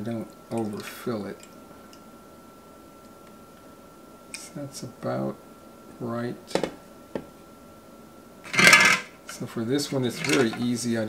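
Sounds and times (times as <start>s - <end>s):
handling plastic parts: 10.1s - 10.7s.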